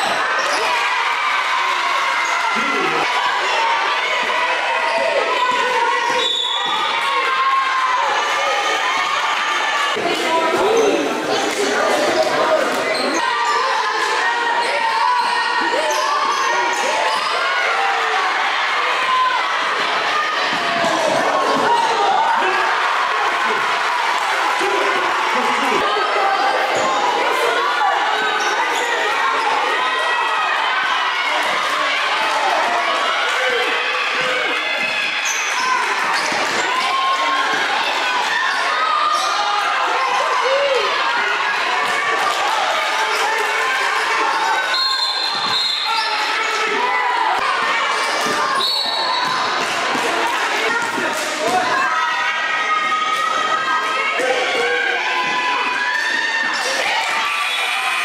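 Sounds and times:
crowd voices talking and shouting: 0.0s - 58.0s.

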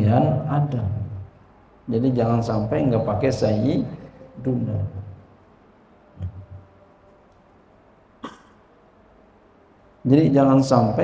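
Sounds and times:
faint room hum: 0.0s - 11.0s
person coughing: 8.2s - 8.6s.

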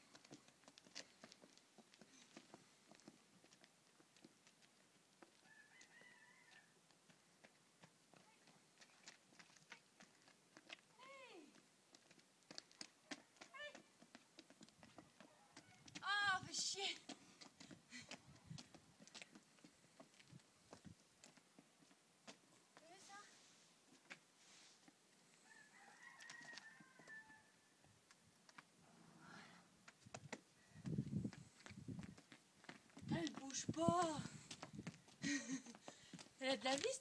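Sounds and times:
hooves on asphalt: 0.0s - 37.0s.

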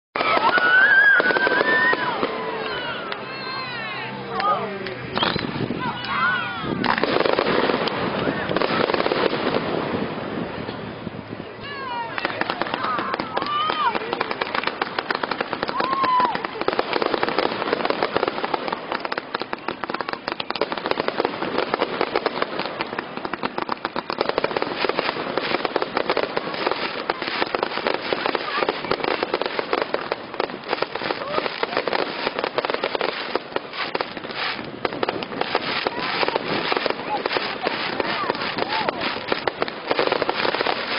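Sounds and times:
fireworks crackling and popping: 0.0s - 40.9s
firework whistle sliding upward: 0.2s - 3.1s, 5.1s - 5.6s.

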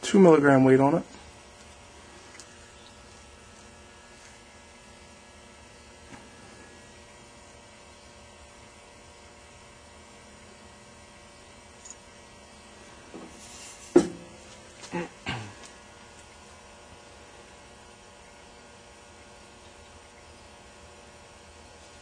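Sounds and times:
low electrical hum: 0.0s - 22.0s
short sharp knock: 14.0s - 14.2s.

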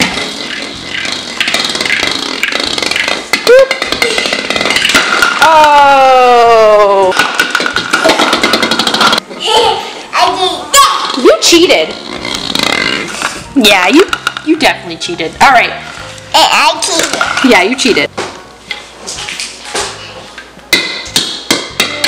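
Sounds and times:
plastic bowling pins clattering: 0.0s - 5.8s, 6.5s - 9.2s, 11.9s - 15.0s, 16.8s - 18.4s.

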